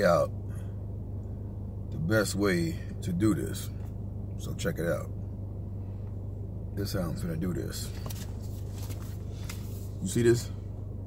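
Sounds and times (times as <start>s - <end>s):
steady low hum in a car: 0.0s - 11.0s.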